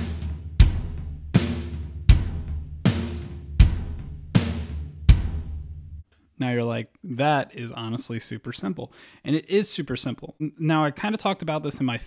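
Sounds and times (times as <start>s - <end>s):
drum kit rock beat: 0.0s - 6.0s.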